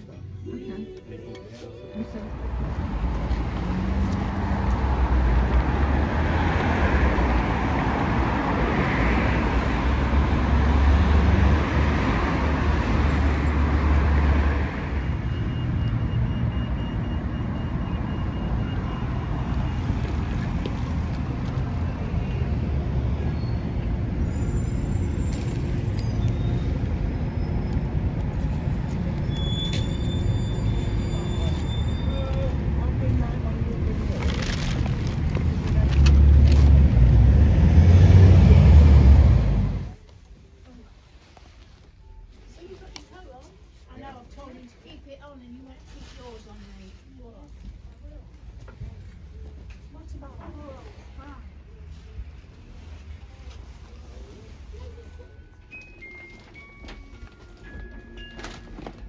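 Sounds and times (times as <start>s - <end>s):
traffic hum: 0.0s - 59.0s
vehicles passing: 0.0s - 59.0s.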